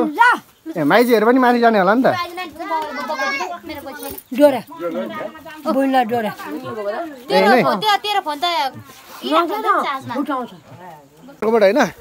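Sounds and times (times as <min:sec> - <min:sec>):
women talking and calling out: 0:00.0 - 0:11.5.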